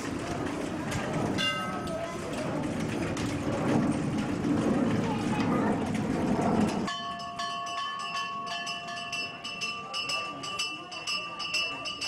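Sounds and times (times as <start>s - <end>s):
bell ringing: 6.9s - 12.0s.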